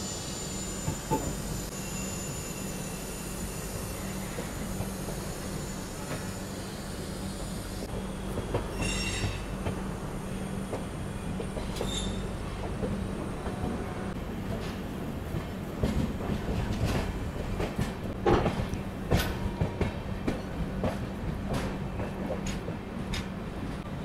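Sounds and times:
train running noise: 0.0s - 24.0s
wheels squealing: 11.7s - 12.4s.

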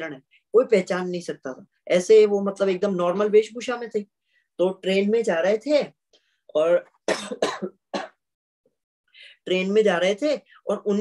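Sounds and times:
man coughing: 7.1s - 8.2s.

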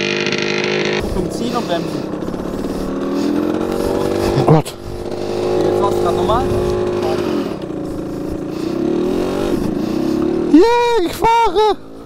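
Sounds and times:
moped engine running: 0.0s - 12.0s.

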